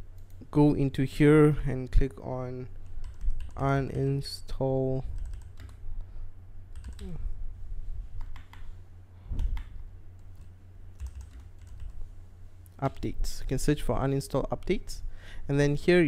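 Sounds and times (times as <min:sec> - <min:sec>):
low steady hum: 0:00.0 - 0:16.0
keyboard typing: 0:02.9 - 0:03.8, 0:05.2 - 0:05.8, 0:06.7 - 0:07.2, 0:08.2 - 0:08.7, 0:09.4 - 0:12.0.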